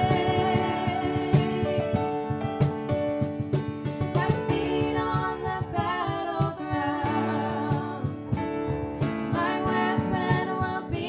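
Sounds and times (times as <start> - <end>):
women singing: 0.0 - 2.2, 4.2 - 8.4, 9.0 - 11.0
strummed acoustic guitar: 0.0 - 6.4
cajon beats: 0.0 - 11.0
keyboard: 0.0 - 11.0.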